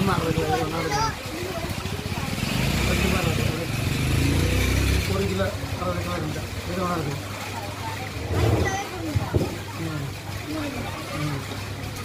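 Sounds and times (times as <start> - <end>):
motorcycle engine running: 0.0 - 9.7
people's voices: 0.0 - 12.0.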